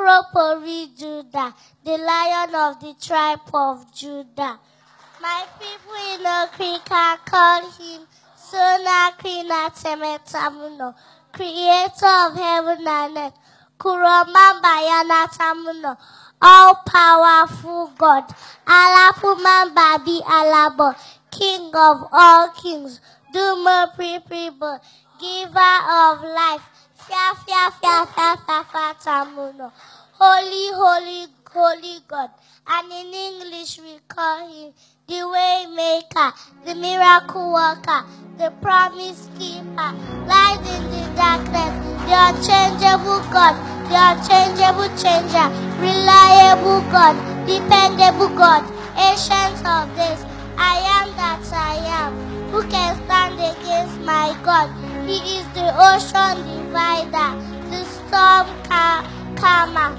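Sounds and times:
girl chanting into a microphone: 5.4 - 50.0
music of sustained chords: 36.5 - 59.9.

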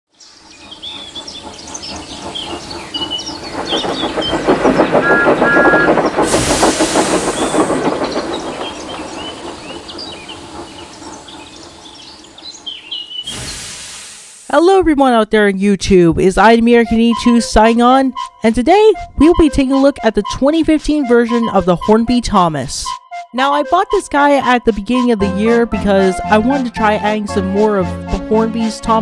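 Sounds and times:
birds chirping: 0.2 - 6.3, 7.1 - 13.3
train wheels rumbling and clattering: 0.3 - 13.7, 24.2 - 29.0
train horn toots: 5.0 - 6.0
burst of hiss: 13.2 - 14.5.

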